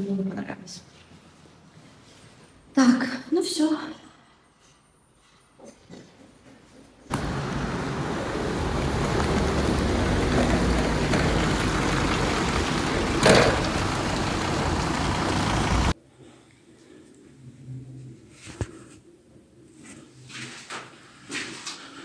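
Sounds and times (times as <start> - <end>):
outdoor traffic noise: 4.2 - 16.0.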